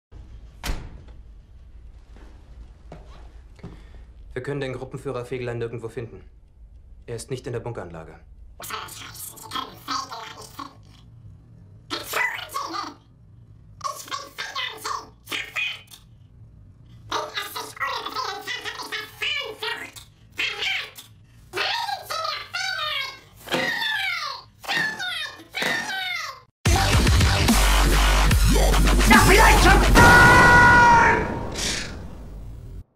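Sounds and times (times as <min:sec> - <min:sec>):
steady low hum: 0:00.1 - 0:23.4
man shouting angrily: 0:29.1 - 0:31.4.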